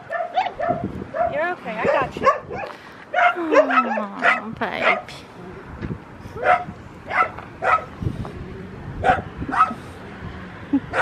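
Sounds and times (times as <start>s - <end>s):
dog barking: 0.0s - 5.1s, 6.4s - 7.9s, 9.0s - 9.8s.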